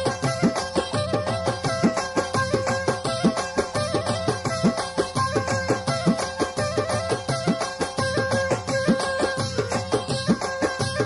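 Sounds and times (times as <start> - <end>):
folk melody: 0.0 - 11.0.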